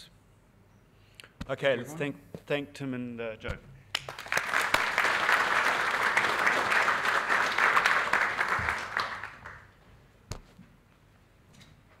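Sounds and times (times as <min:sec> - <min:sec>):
audience applauding: 0:03.9 - 0:09.8.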